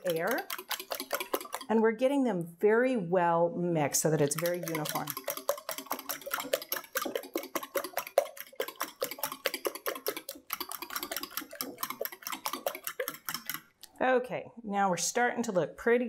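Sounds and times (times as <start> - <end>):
fork beating eggs in glass bowl: 0.0 - 1.8, 4.0 - 13.9.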